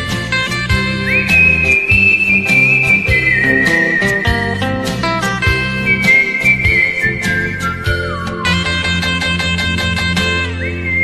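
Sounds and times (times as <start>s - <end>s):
instrumental backing track: 0.0s - 11.0s
person whistling a melody: 0.9s - 8.9s, 10.3s - 11.0s.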